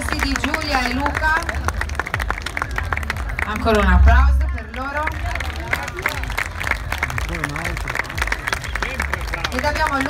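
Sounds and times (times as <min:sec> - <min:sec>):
audience applauding: 0:00.0 - 0:10.0
crowd voices talking: 0:00.0 - 0:10.0.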